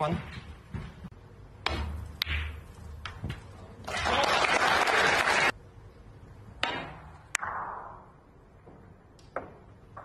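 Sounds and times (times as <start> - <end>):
audience applauding: 3.9 - 5.5.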